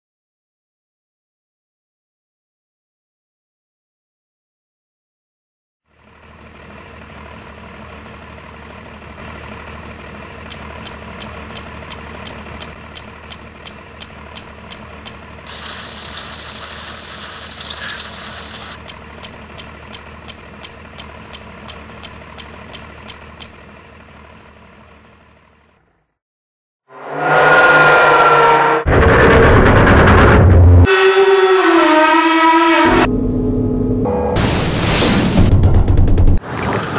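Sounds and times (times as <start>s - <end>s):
high beeps: 10.5s - 23.6s
machine humming and clicking: 10.5s - 23.6s.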